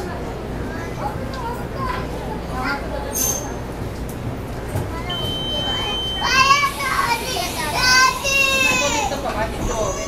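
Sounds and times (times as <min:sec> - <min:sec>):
train door warning buzzer: 0:05.1 - 0:06.6
child calling out loudly: 0:06.2 - 0:09.1.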